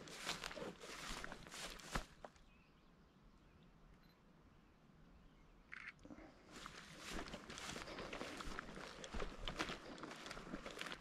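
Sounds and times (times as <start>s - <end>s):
grass brushing legs: 0.0s - 2.4s, 6.4s - 11.0s
footsteps in dry grass: 0.0s - 2.5s, 6.1s - 11.0s.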